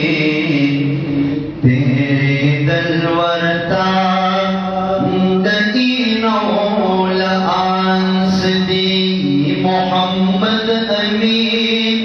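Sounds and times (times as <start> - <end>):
man singing long held notes: 0.0 - 12.0.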